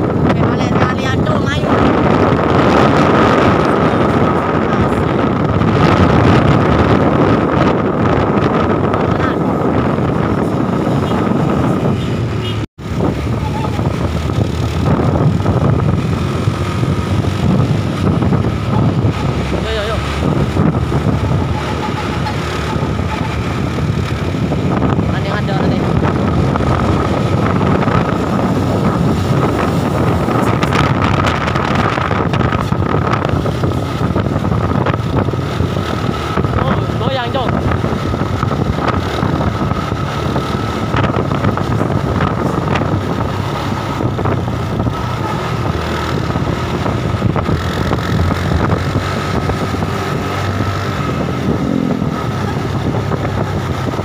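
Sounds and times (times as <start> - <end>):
vehicle engine drone: 0.0 - 54.0
wind buffeting microphone: 0.0 - 54.0.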